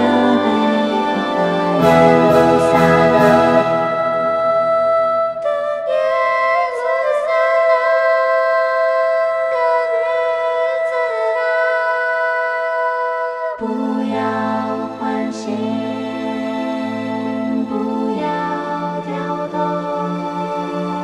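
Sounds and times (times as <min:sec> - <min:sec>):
choir and orchestra music: 0:00.0 - 0:12.5, 0:13.5 - 0:21.0.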